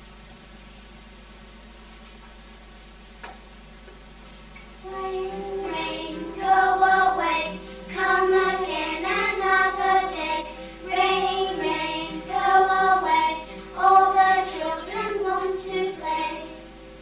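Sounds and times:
young children singing: 0:04.8 - 0:17.0.

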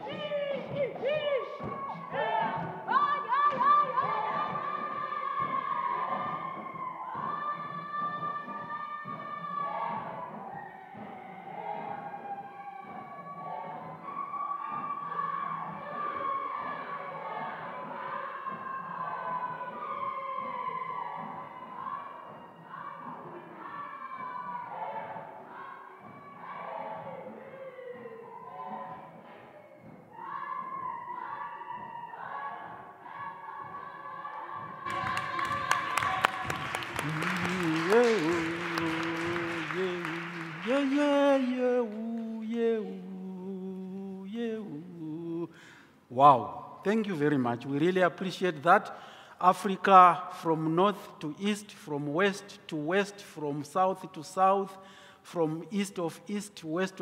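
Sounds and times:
group singing in harmony: 0:00.0 - 0:45.7.

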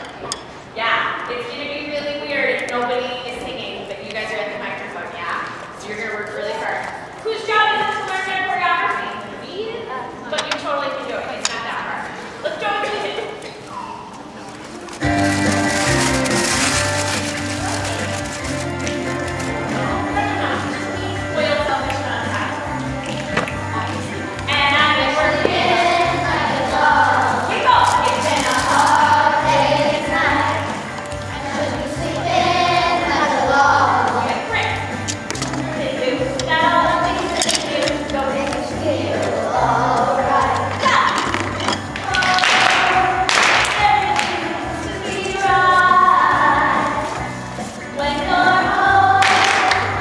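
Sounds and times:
young voices singing in unison: 0:22.6 - 0:34.5, 0:35.6 - 0:41.2, 0:42.1 - 0:47.2, 0:48.0 - 0:50.0.

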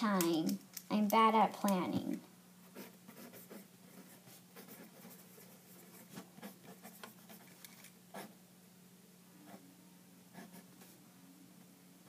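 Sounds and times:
pen scratching on paper: 0:02.7 - 0:08.3.

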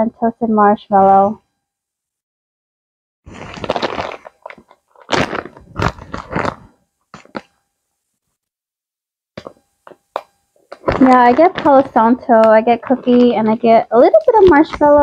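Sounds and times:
plastic packaging crinkling: 0:03.3 - 0:07.6, 0:09.4 - 0:15.0.

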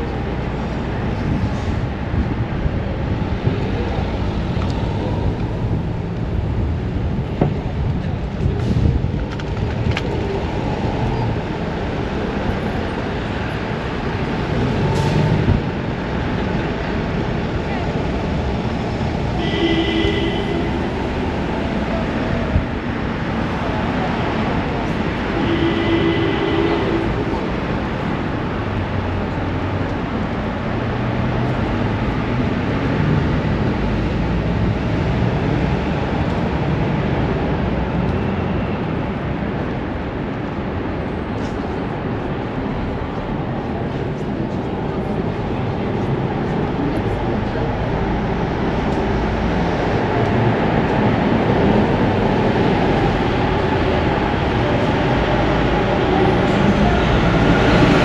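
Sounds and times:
traffic rumble: 0:00.0 - 0:58.0
voices of passers-by: 0:00.0 - 0:58.0.

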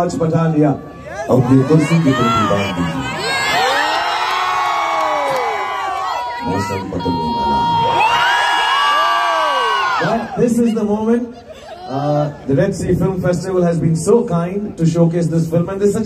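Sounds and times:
audience cheering and screaming: 0:00.9 - 0:10.8.

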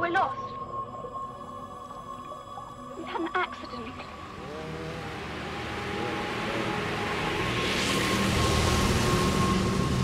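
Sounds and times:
low droning soundtrack: 0:00.0 - 0:10.0
steady high tone: 0:00.0 - 0:10.0.

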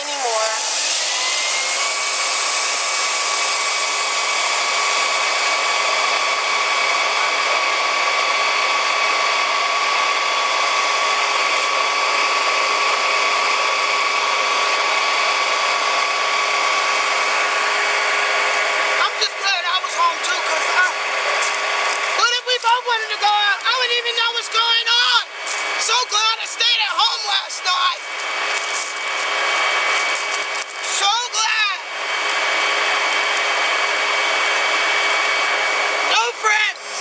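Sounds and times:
steady mechanical whine: 0:00.0 - 0:37.0
hiss: 0:00.2 - 0:05.2
voices: 0:19.0 - 0:21.0, 0:22.0 - 0:28.0, 0:36.1 - 0:36.8.

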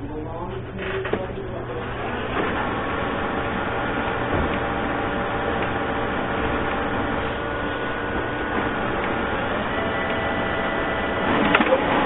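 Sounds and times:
steady mechanical hum: 0:00.0 - 0:12.0
steady tones: 0:00.0 - 0:12.0.

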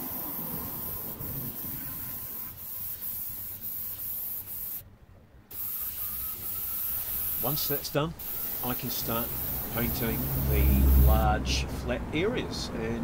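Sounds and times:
spray gun hissing: 0:00.0 - 0:04.8, 0:05.5 - 0:11.3.

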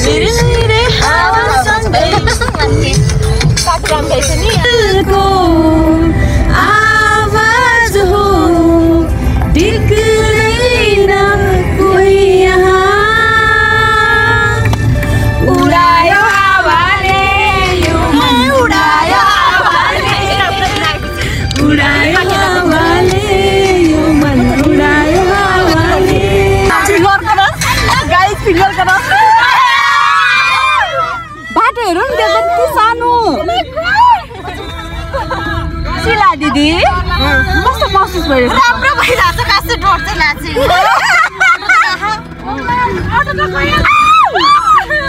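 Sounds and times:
car road rumble: 0:00.0 - 0:45.0
women talking and laughing: 0:01.2 - 0:04.5, 0:19.3 - 0:21.3, 0:25.3 - 0:29.6, 0:31.4 - 0:45.0
women talking: 0:31.4 - 0:34.3, 0:35.9 - 0:44.4.

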